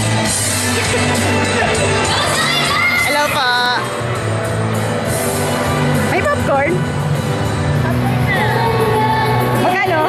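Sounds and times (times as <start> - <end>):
crowd cheering and shrieking: 0.0 - 6.1
music with steady bass line: 0.0 - 10.0.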